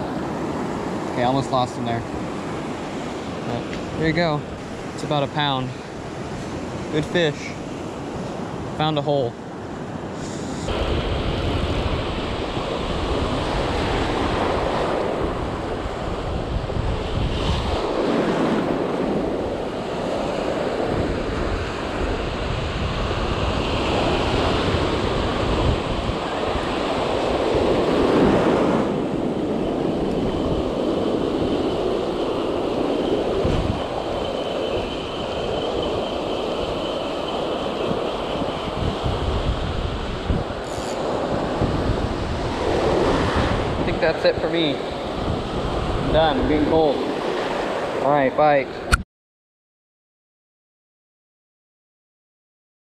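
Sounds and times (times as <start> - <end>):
ocean surf breaking on beach: 0.0 - 48.9
wind buffeting microphone: 9.5 - 48.0.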